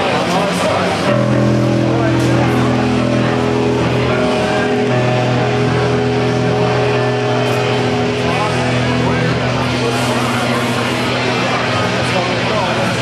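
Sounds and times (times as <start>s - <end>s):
crowd chatter: 0.0s - 13.0s
droning electric guitar and bass: 0.0s - 13.0s.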